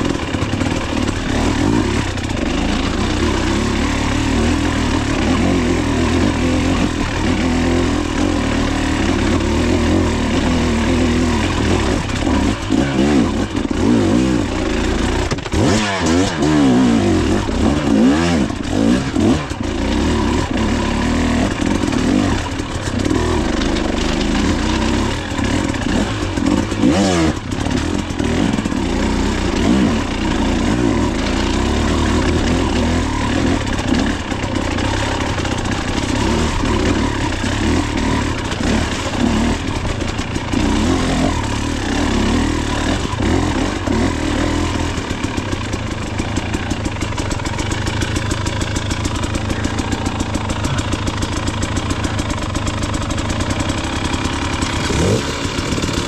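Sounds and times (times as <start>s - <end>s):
dirt bike engine: 0.0s - 56.0s.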